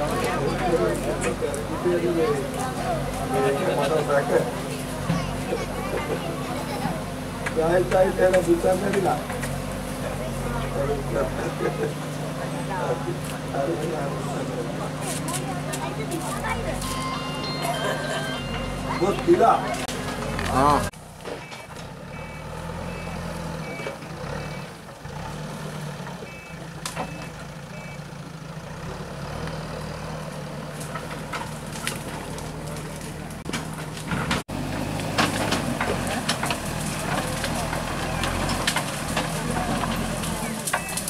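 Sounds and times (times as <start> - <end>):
heavy vehicle engine running: 0.0 - 41.0
reversing alarm beeping: 16.8 - 19.8, 21.4 - 24.7.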